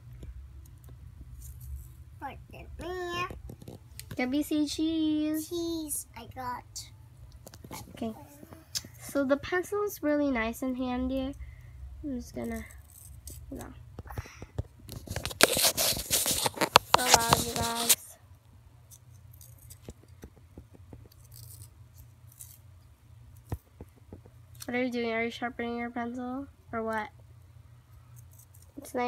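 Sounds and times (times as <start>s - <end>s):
handling scraping and rustling: 0.8s - 4.4s, 12.4s - 18.1s.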